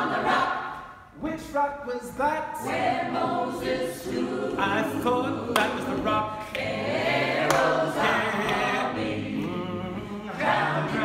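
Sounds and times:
a cappella group singing harmony: 0.0 - 1.2, 2.5 - 11.0.

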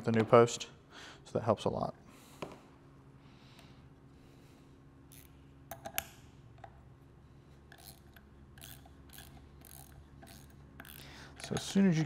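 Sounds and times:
screwdriver clicks and ticks: 7.7 - 11.8.

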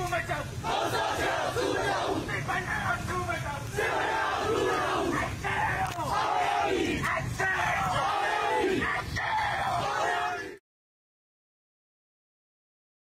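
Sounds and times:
crowd shouting slogans: 0.1 - 10.6.

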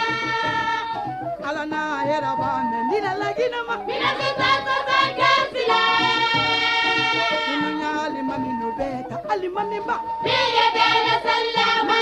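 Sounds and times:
instrumental backing with beat: 0.0 - 12.0.

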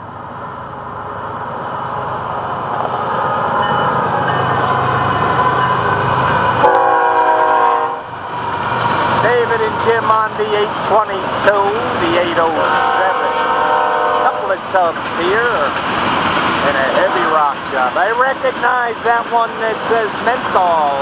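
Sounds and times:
diesel locomotives passing: 0.0 - 21.0
train air horn blast: 6.6 - 8.1, 12.6 - 14.6.

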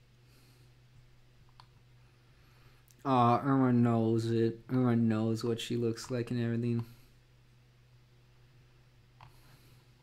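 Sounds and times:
low electrical hum: 0.0 - 10.0
faint clicks: 1.4 - 1.8.

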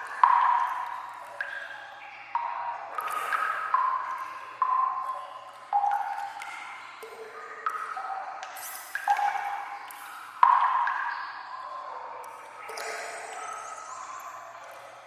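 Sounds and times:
water drops plinking: 0.0 - 11.4, 12.2 - 14.8.

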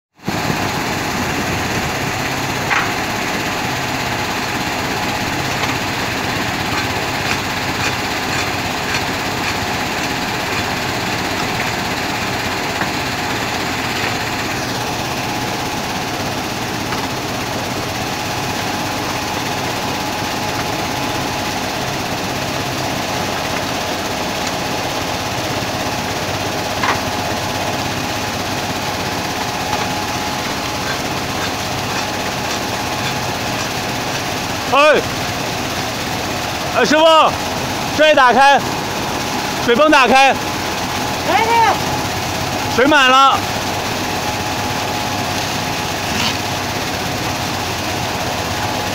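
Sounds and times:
constant motor hum: 0.2 - 48.9
vibrating screen machinery din: 0.2 - 48.9.

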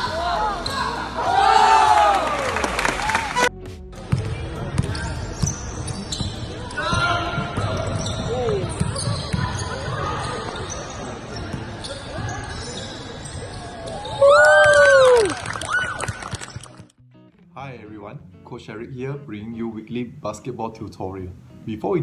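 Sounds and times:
basketball bouncing on court: 4.0 - 10.7
shoe squeaks: 4.8 - 6.8, 7.5 - 14.2.

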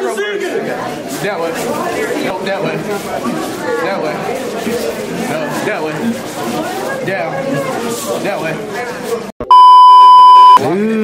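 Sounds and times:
censor bleep: 9.4 - 10.6.

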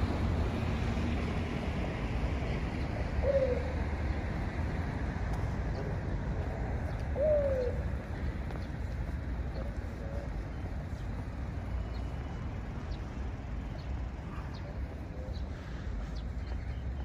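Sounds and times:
road traffic rumble: 0.0 - 17.0
dove cooing: 3.2 - 3.8, 7.2 - 7.9, 9.6 - 10.4.

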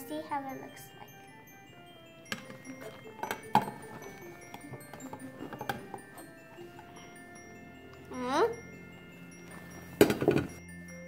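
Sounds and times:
chime music: 0.0 - 11.0.

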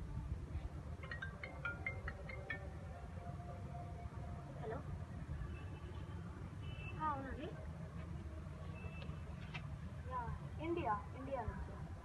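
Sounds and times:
phone ringtone marimba notes: 1.0 - 3.1.

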